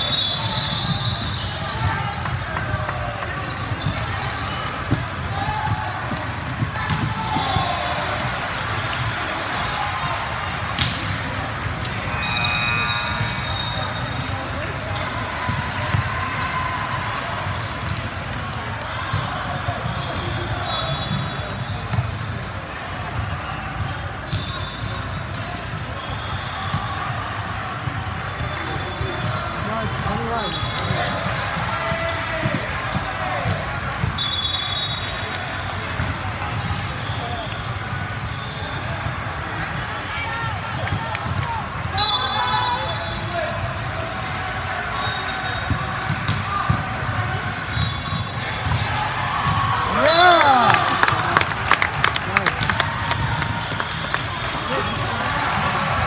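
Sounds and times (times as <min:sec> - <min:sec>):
referee whistle blasts: 0:00.0 - 0:01.8, 0:12.1 - 0:14.2, 0:20.0 - 0:21.9, 0:24.3 - 0:25.2, 0:34.1 - 0:35.2, 0:41.9 - 0:43.4, 0:44.9 - 0:45.8.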